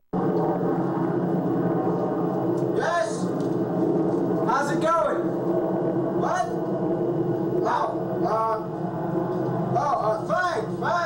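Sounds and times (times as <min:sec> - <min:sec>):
steady low hum: 0:00.1 - 0:11.0.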